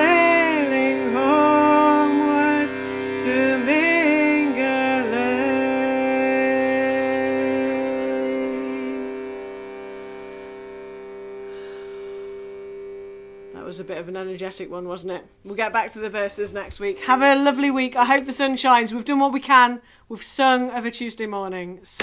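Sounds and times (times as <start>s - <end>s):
woman singing folk song: 0.0s - 9.3s
reed drone of bellows instrument: 0.0s - 14.6s.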